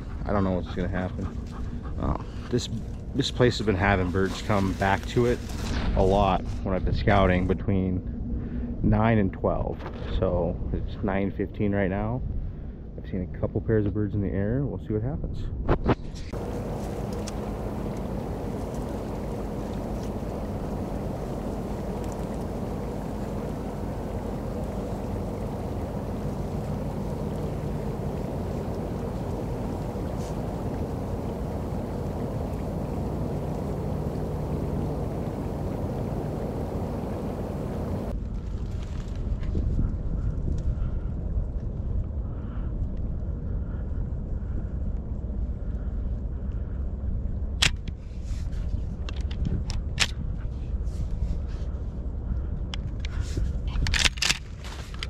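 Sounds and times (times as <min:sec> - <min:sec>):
faint low hum: 0:00.0 - 0:15.6, 0:16.2 - 0:55.0
wind blowing across microphone: 0:14.8 - 0:55.0.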